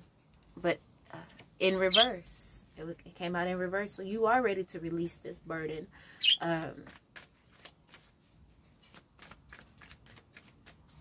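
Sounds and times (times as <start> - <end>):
cards being shuffled: 6.5 - 11.0.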